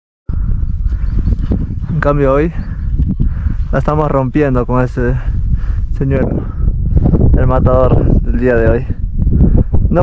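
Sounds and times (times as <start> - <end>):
wind rumbling on microphone: 0.3 - 10.0.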